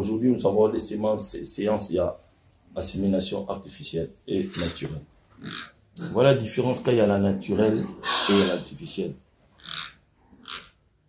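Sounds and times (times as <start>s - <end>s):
pig grunting: 4.4s - 6.3s, 7.7s - 8.7s, 9.6s - 10.8s.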